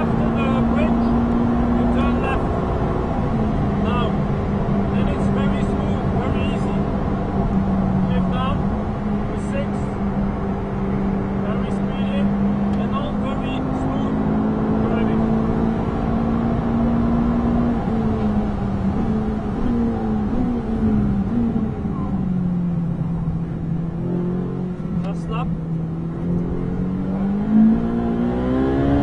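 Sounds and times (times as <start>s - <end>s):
car engine revving and downshifting: 0.0s - 29.0s.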